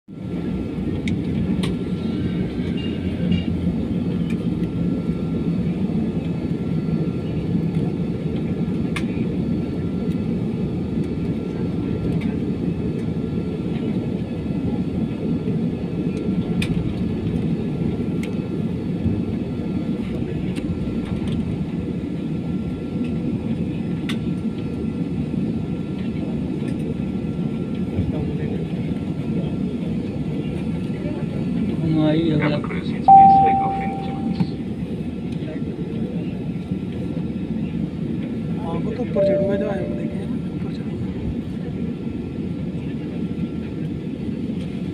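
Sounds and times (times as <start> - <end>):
jet engines low rumble: 0.1 - 44.9
thin steady whine: 33.1 - 34.7, 39.1 - 40.4.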